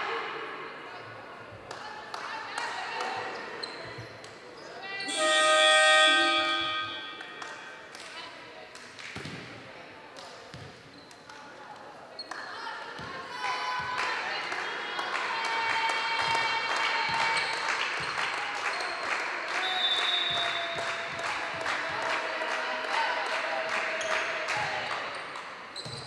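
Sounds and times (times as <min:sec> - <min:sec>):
voices: 0:04.7 - 0:08.3
loud horn-like tone: 0:05.1 - 0:07.6.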